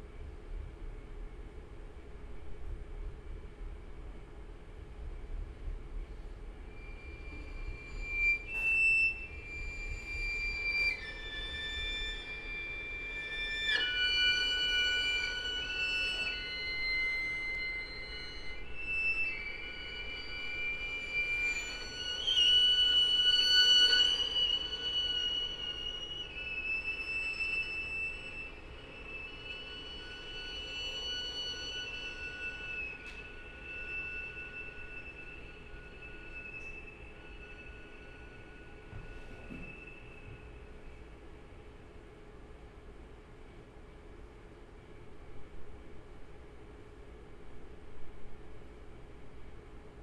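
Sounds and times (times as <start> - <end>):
string quartet sustained notes: 13.7 - 39.8.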